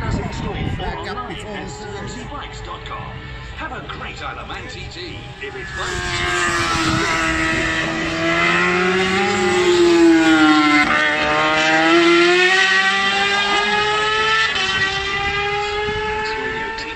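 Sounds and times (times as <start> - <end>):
racing motorcycle engine: 0.0 - 16.9.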